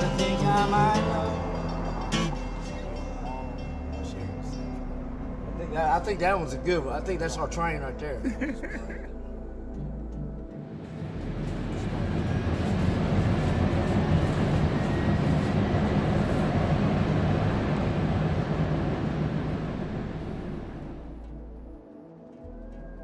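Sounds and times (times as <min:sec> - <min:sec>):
low ambient music drone: 0:00.0 - 0:23.0
train running from inside: 0:10.6 - 0:21.8.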